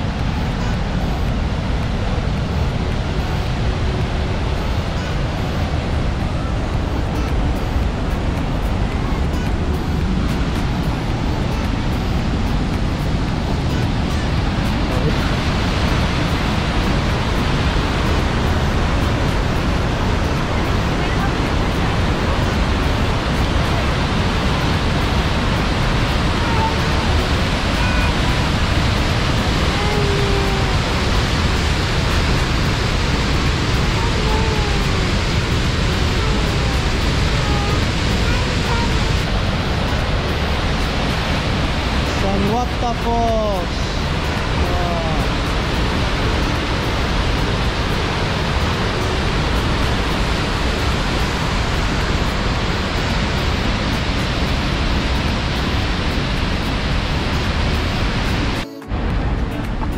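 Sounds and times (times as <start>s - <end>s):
faint voices: 0.0s - 49.9s
waterfall roaring: 0.0s - 59.9s.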